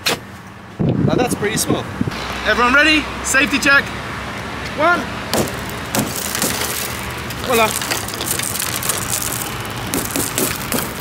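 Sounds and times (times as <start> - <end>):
glass shattering: 5.4 - 11.0
glass cubes crumbling: 5.6 - 11.0.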